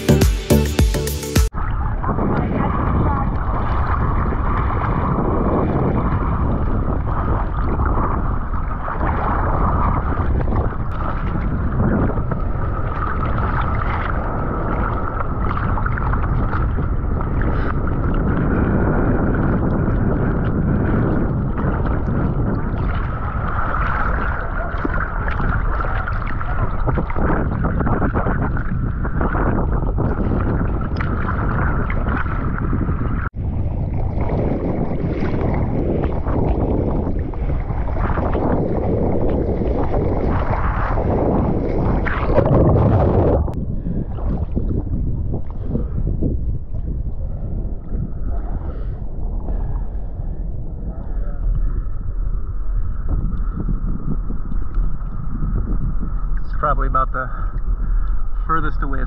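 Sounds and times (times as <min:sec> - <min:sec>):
water sloshing and splashing: 0:01.5 - 0:50.5
wind buffeting microphone: 0:01.5 - 0:59.0.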